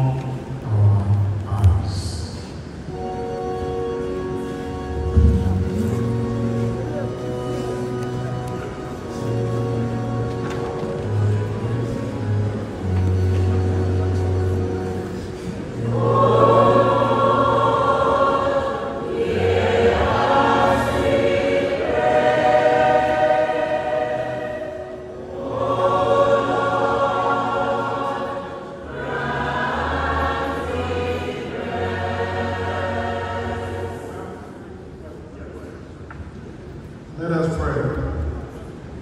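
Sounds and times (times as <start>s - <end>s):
low sustained bass notes: 0.0s - 28.3s
choir singing a hymn: 2.9s - 35.0s.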